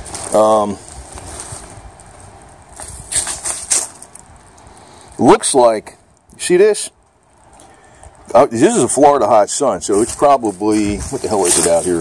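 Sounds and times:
bubble wrap and cardboard crinkling: 0.0 - 4.8, 9.8 - 12.0.

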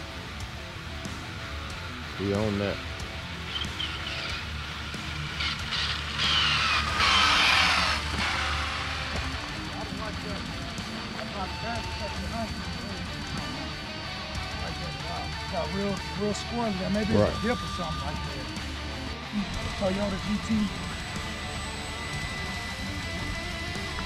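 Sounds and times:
background music: 0.0 - 24.0
rc car whizzing past: 5.3 - 9.6.

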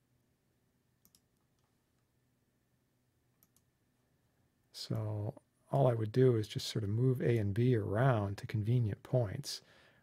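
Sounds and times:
computer mouse clicks: 1.0 - 1.7, 3.4 - 3.7.

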